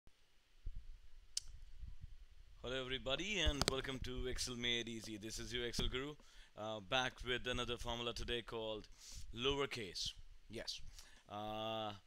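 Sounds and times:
faint low bumps: 0:00.6 - 0:06.2.

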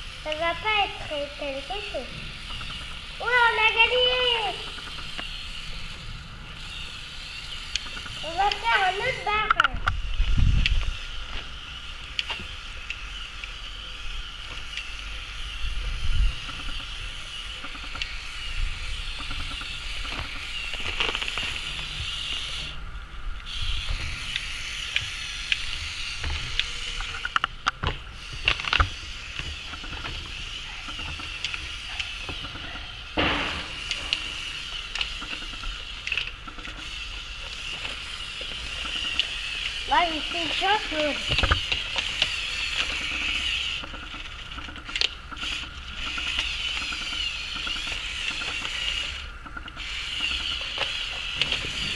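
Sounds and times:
toy truck motor whining: 0:00.0 - 0:22.8, 0:23.4 - 0:51.9.

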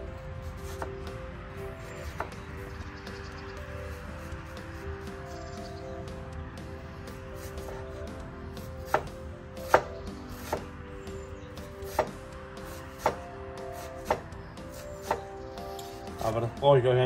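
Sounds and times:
knife chopping on wooden board: 0:00.5 - 0:01.0, 0:01.9 - 0:02.4, 0:07.4 - 0:08.0, 0:08.6 - 0:10.7, 0:11.6 - 0:16.0.

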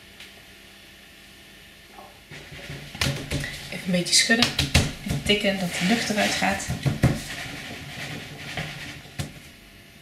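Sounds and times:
mold knocking on table: 0:04.4 - 0:05.5, 0:06.5 - 0:07.4.

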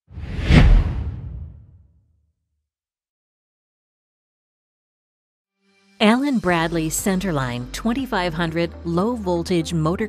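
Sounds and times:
whoosh with deep rumble: 0:00.1 - 0:01.8.

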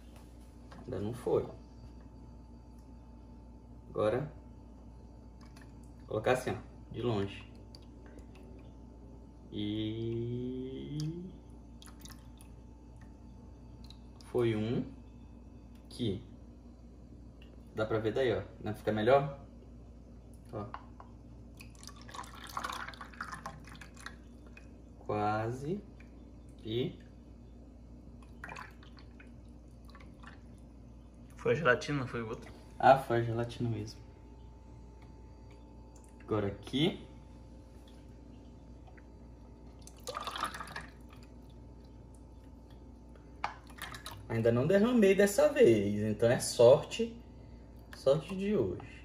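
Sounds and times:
small drips and splashes: 0:05.3 - 0:06.1, 0:07.2 - 0:08.8, 0:10.8 - 0:14.4, 0:20.2 - 0:27.4, 0:28.0 - 0:31.6, 0:35.0 - 0:36.4, 0:37.7 - 0:44.5, 0:47.6 - 0:48.9
liquid trickling into plastic mold: 0:21.5 - 0:24.8, 0:28.2 - 0:31.5, 0:37.8 - 0:44.3.

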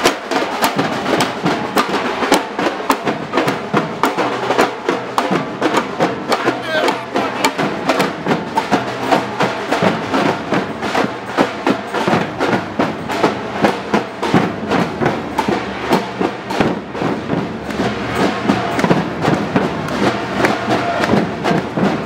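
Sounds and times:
drums played in fast rhythm: 0:00.0 - 0:22.0.

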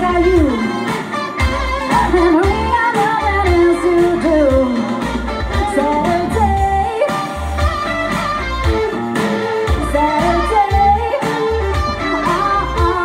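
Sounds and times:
woman singing: 0:00.0 - 0:08.0, 0:09.2 - 0:13.0
bass and drums: 0:00.0 - 0:13.0
distorted electric guitar: 0:00.0 - 0:13.0.

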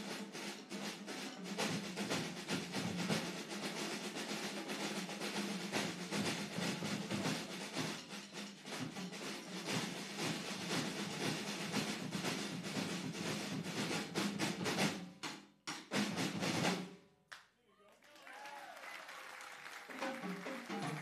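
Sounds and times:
marching snare and bass drums: 0:00.0 - 0:17.0.

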